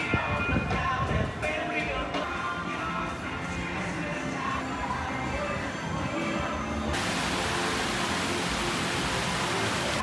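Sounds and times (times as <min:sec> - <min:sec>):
background music: 0:00.0 - 0:10.0
loud steady hiss: 0:06.9 - 0:10.0.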